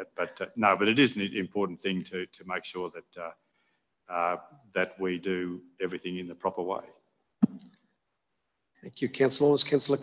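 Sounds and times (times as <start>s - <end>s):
man speaking: 0.0s - 3.4s, 4.0s - 7.1s, 8.7s - 10.0s.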